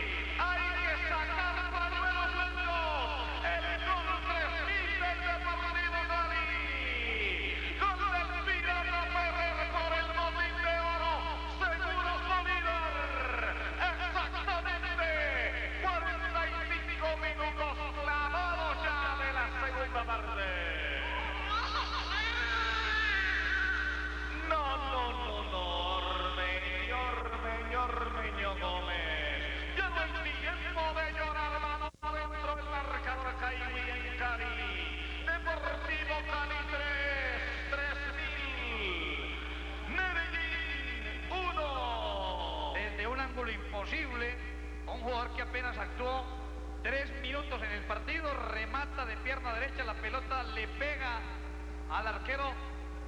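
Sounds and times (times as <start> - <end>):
steady low hum: 0.0 - 53.0.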